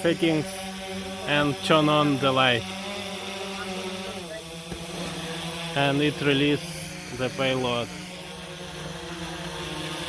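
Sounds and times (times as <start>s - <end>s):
drone propellers humming: 0.0s - 10.0s.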